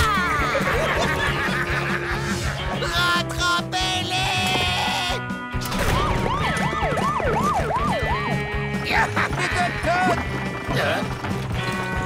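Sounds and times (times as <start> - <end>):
cartoon soundtrack music: 0.0 - 12.0
fast wailing siren: 6.0 - 8.6.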